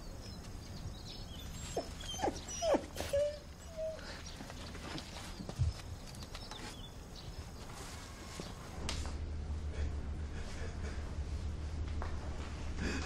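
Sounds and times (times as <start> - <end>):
dog whimpering and yelping: 1.3 - 4.3.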